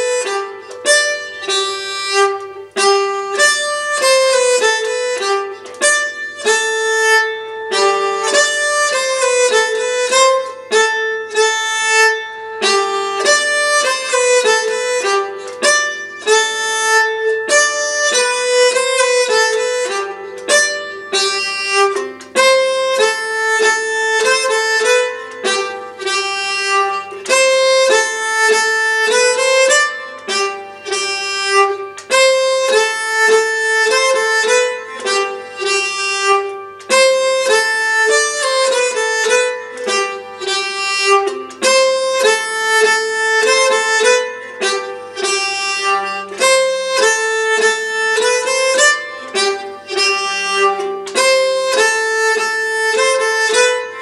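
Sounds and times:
bowed keyed fiddle folk tune: 0:00.0 - 0:54.0.

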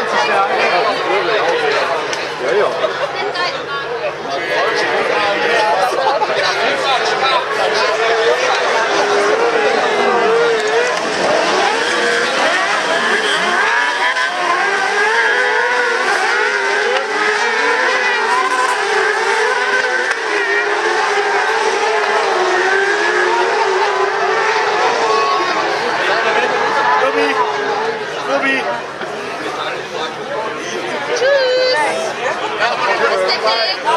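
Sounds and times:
racing kart engines revving: 0:00.0 - 0:33.9.

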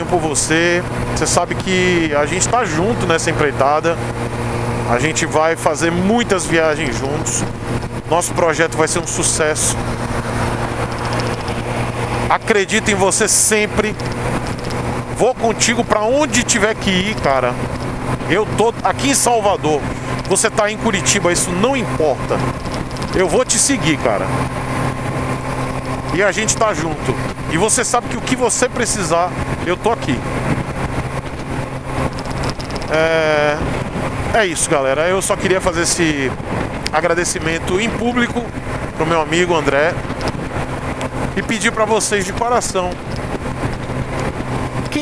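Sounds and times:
motorcycle engine cruising: 0:00.0 - 0:45.0
wind and road noise: 0:00.0 - 0:45.0
wind rushing over helmet: 0:09.8 - 0:12.3, 0:30.2 - 0:34.4, 0:36.2 - 0:37.0, 0:38.4 - 0:39.1, 0:39.9 - 0:41.4, 0:42.8 - 0:45.0.

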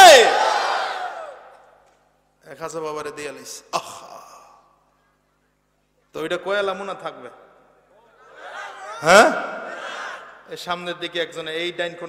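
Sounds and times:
man speaking: 0:09.0 - 0:09.6.

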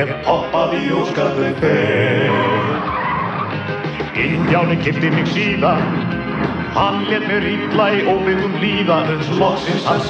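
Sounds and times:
cartoon music with sung word: 0:00.0 - 0:10.0
tyre skid screech: 0:02.2 - 0:07.0.

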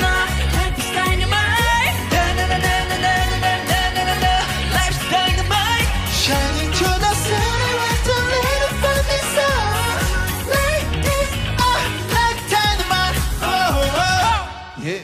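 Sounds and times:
disco-pop backing track: 0:00.0 - 0:15.0
male group singing: 0:02.1 - 0:14.6.

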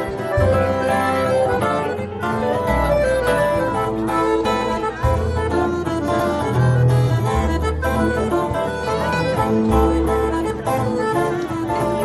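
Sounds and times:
folk dance music: 0:00.0 - 0:12.0
held bass notes: 0:00.0 - 0:12.0.

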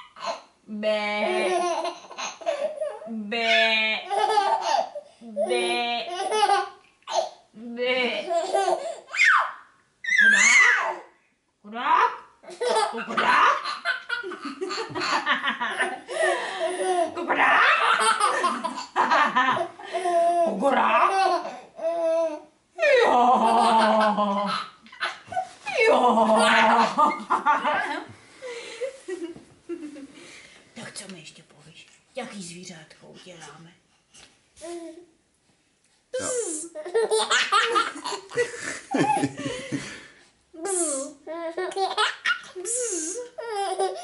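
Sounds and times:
baby laughing: 0:04.1 - 0:07.4, 0:08.3 - 0:11.0, 0:12.5 - 0:20.5, 0:36.2 - 0:39.6, 0:40.7 - 0:44.0.

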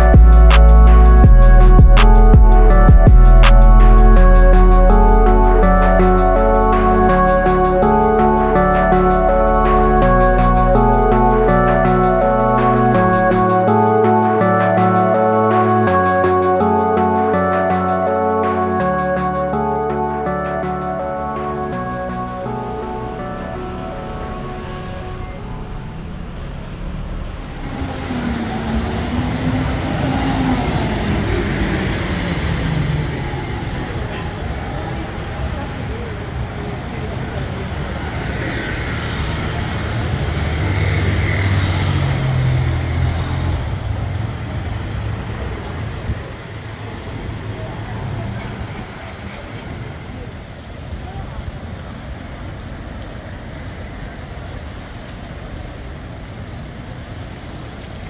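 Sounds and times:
bus engine passing: 0:00.0 - 0:58.0
pedestrians talking: 0:00.0 - 0:58.0
traffic hum: 0:00.0 - 0:58.0
motor scooters passing: 0:23.1 - 0:50.6.

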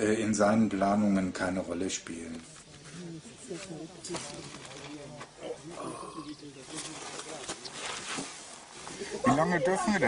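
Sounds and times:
distant indistinct conversation: 0:00.0 - 0:10.0.

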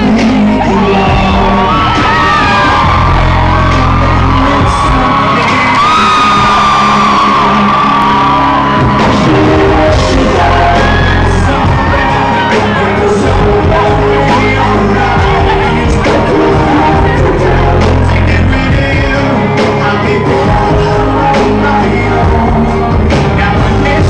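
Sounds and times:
fans screaming and whooping: 0:00.0 - 0:24.0
live pop-rock band playing: 0:00.0 - 0:24.0
man singing into microphone: 0:00.0 - 0:24.0.

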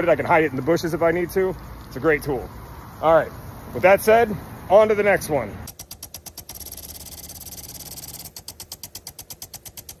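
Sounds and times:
sprinkler spray hiss: 0:00.0 - 0:10.0
sprinkler arm ticking: 0:05.6 - 0:10.0.

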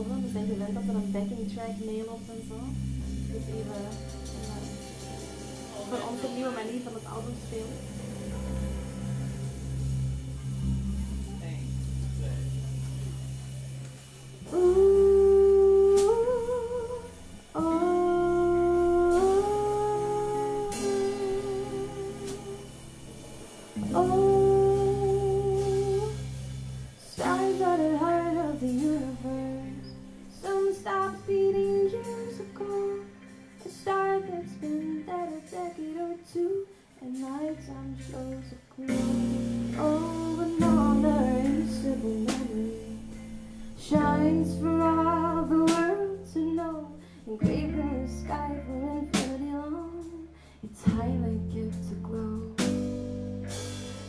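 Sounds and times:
woman singing: 0:00.0 - 0:08.1, 0:14.4 - 0:22.8, 0:23.8 - 0:26.3, 0:27.0 - 0:53.0
live band playing: 0:02.0 - 0:35.7.

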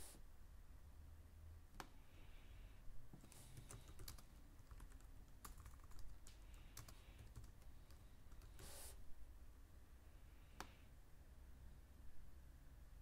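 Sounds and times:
typing on computer keyboard: 0:03.3 - 0:08.6.

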